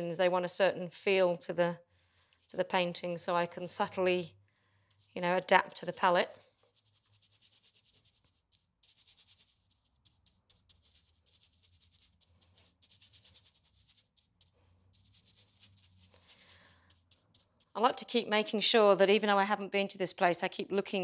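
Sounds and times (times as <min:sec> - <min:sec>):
paintbrush strokes on paper: 0:02.0 - 0:18.2.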